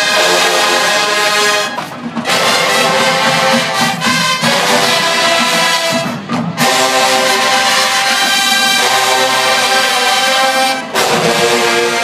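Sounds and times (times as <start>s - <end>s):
brass long held chords: 0.0s - 12.0s
marching band playing: 0.0s - 12.0s.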